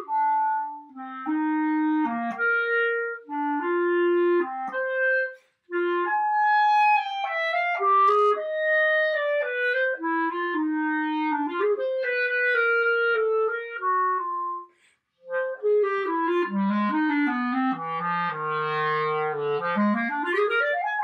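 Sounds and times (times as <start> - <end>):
solo clarinet melody: 0.0 - 21.0
player taking breath: 14.7 - 15.1.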